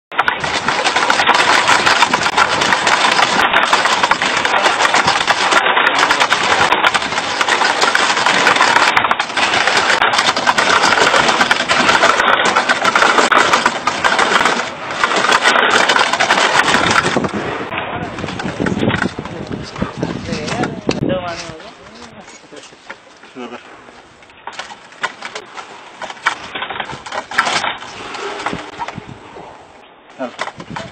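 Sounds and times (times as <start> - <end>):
pulley creaking and rattling: 0.1 - 29.2, 30.2 - 30.9.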